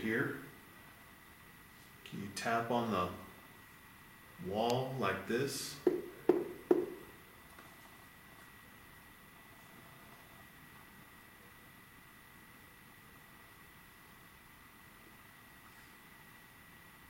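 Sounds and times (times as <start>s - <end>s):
low hiss: 0.0s - 17.0s
steady high-pitched whine: 0.0s - 17.0s.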